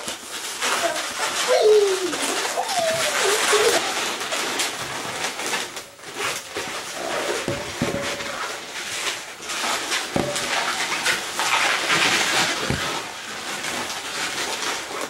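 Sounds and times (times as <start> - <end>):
balloons squeaking and rubbing: 0.0 - 15.0.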